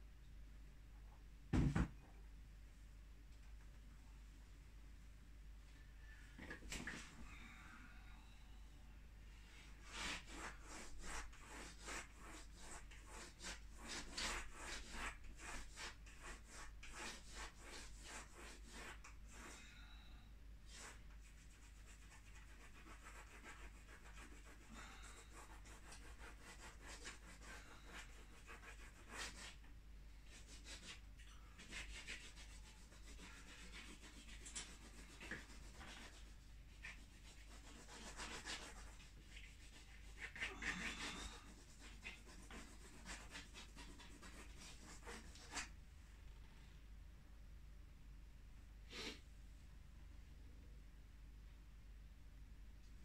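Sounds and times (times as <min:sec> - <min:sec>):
crayon scratching on paper: 0:09.8 - 0:19.6, 0:20.7 - 0:29.6, 0:30.3 - 0:31.0, 0:31.6 - 0:45.7.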